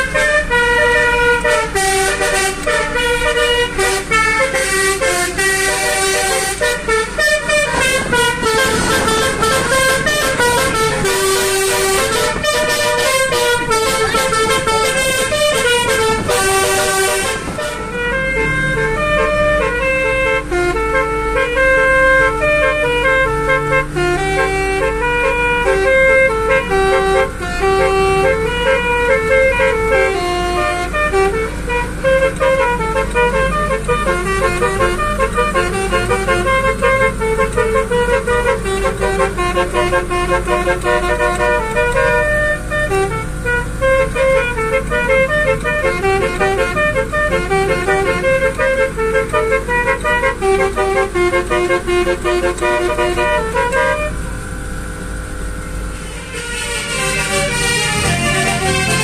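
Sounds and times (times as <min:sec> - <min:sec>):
multi-tone air horns melody: 0:00.0 - 0:54.3, 0:55.4 - 0:59.0
car engine and road noise: 0:00.0 - 0:59.0.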